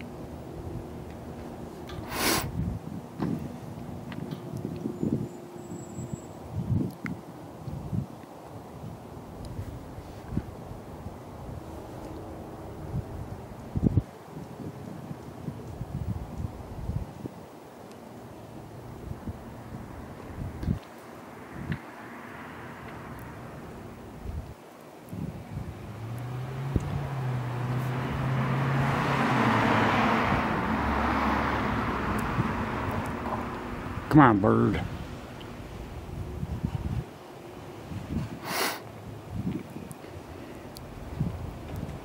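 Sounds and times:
wind on microphone: 2.0 - 5.3, 6.0 - 17.5, 18.9 - 21.8, 23.1 - 34.1, 34.7 - 42.0
car passing: 10.4 - 14.0, 18.1 - 24.6, 25.2 - 42.0.

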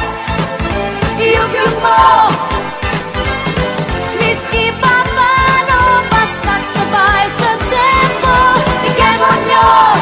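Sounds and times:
pop love song: 0.3 - 10.0.

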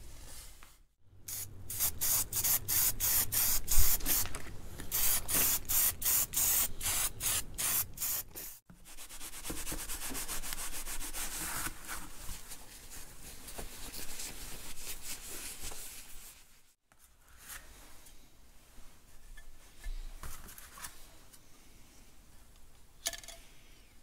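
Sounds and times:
aerosol spray can bursts: 1.3 - 4.3, 4.9 - 8.6.

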